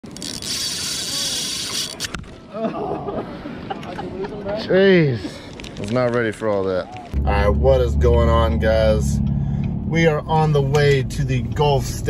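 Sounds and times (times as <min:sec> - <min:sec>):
fishing reel drag buzzing: 0:00.0 - 0:02.2.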